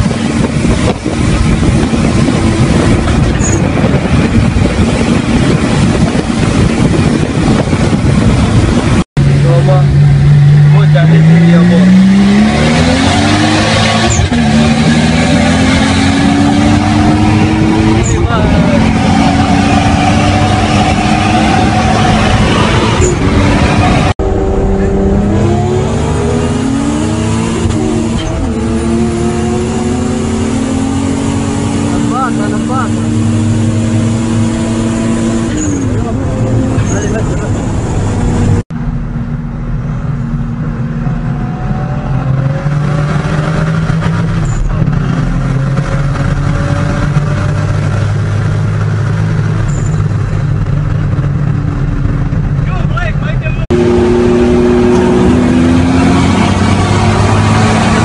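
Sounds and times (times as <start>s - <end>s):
car engine accelerating hard: 0.0s - 58.0s.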